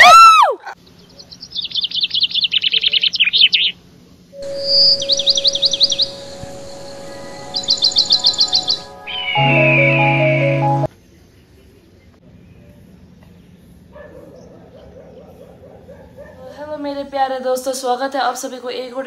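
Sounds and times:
birds chirping in trills: 4.4s - 10.9s
sustained music chord: 4.4s - 10.9s
dog yelp: 14.0s - 16.4s.

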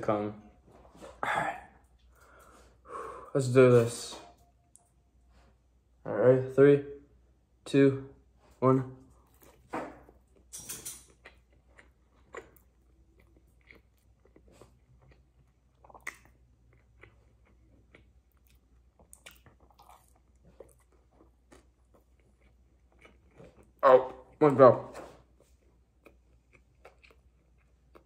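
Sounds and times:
person chewing food: 9.2s - 24.4s, 25.2s - 28.0s.

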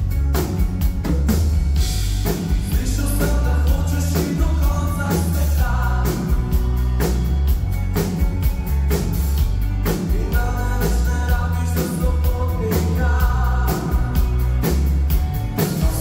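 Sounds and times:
live rock band playing: 0.0s - 16.0s
lead vocals: 2.3s - 7.2s, 9.8s - 14.9s, 15.6s - 16.0s.

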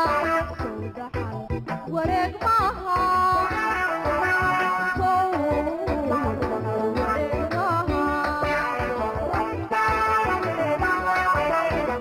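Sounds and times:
band accompaniment with low beat: 0.0s - 12.0s
woman singing: 0.0s - 12.0s.

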